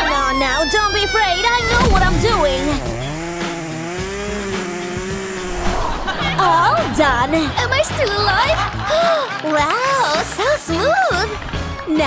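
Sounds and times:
hair clipper buzzing: 0:02.6 - 0:05.4.

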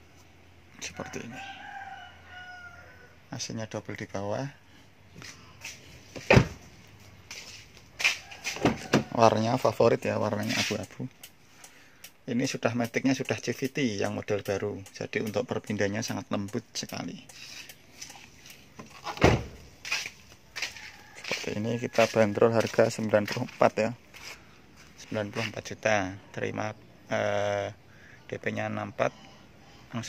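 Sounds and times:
car door shutting: 0:06.1 - 0:06.7, 0:08.5 - 0:09.2, 0:18.8 - 0:19.7
car door shutting thud: 0:06.2 - 0:06.6, 0:19.0 - 0:19.6.

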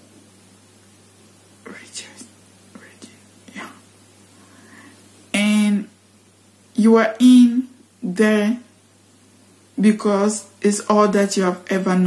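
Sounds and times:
faint low hum: 0:00.0 - 0:12.0
woman breathing softly: 0:04.3 - 0:05.1.

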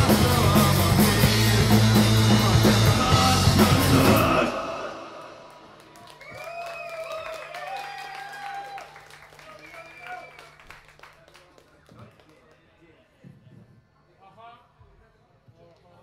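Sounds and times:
rock band playing loudly: 0:00.0 - 0:05.0.

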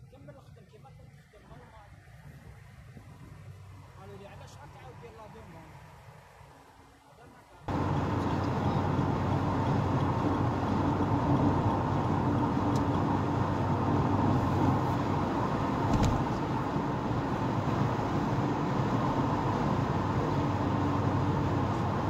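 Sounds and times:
tyre and road noise: 0:01.8 - 0:22.0
car engine and drivetrain hum: 0:07.7 - 0:22.0.

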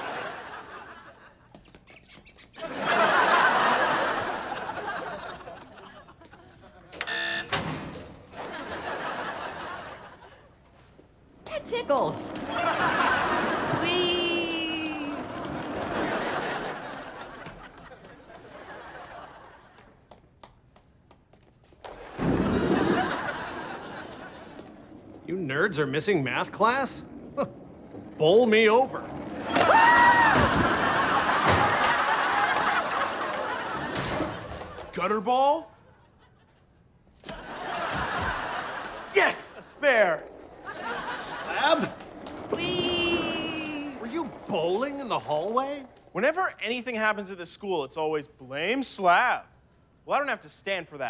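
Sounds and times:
short steady buzzer tone: 0:07.0 - 0:07.6
comic bowling strike crash: 0:22.0 - 0:23.6, 0:29.4 - 0:32.6.

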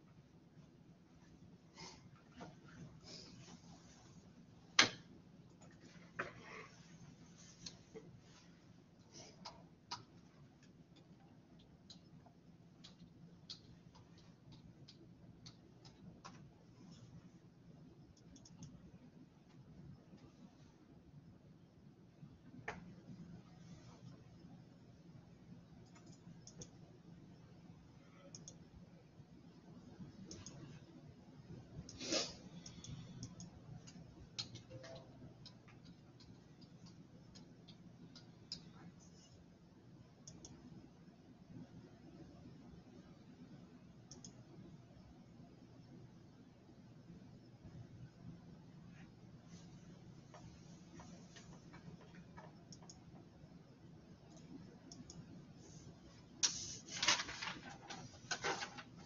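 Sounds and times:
low room hum: 0:00.0 - 0:59.0.

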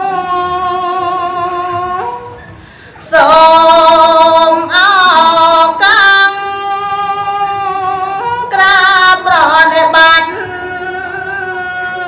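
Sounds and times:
woman chanting into a microphone: 0:03.0 - 0:12.0.

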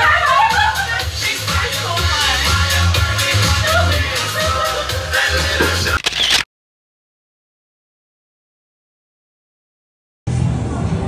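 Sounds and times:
dance music: 0:00.0 - 0:06.4.

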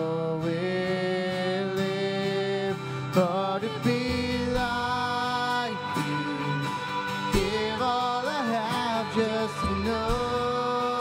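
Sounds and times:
strummed guitars: 0:00.0 - 0:11.0
voices singing: 0:00.0 - 0:11.0
worship band playing: 0:00.0 - 0:11.0.

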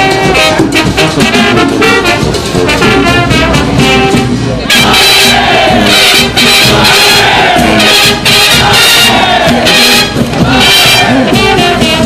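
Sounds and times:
loud crowd noise: 0:00.0 - 0:12.0
marching band brass playing: 0:00.0 - 0:12.0.

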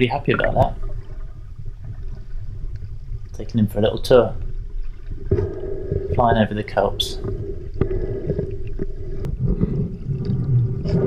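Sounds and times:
muffled underwater water rumble: 0:00.0 - 0:11.0
small clicks and crackles: 0:01.0 - 0:03.4.

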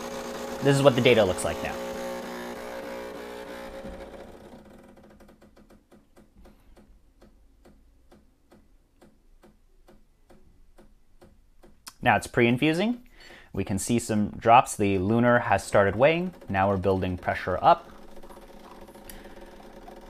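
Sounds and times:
espresso machine humming: 0:00.0 - 0:05.0, 0:17.8 - 0:20.0
faint regular ticking: 0:16.0 - 0:20.0.

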